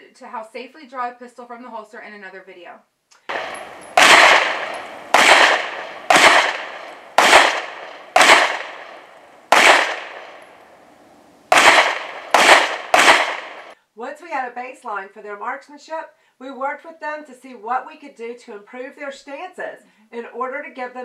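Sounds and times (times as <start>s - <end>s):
handgun shots: 3.2s - 10.5s, 11.5s - 13.8s.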